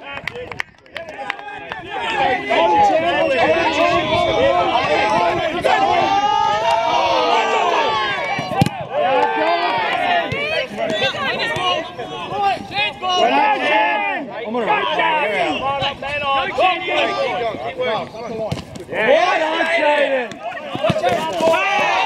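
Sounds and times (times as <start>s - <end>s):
voices calling and shouting: 0.0s - 22.0s.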